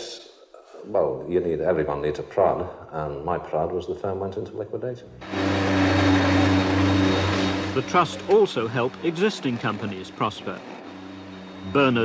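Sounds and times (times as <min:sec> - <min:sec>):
power tool humming on car body: 0:05.2 - 0:12.0.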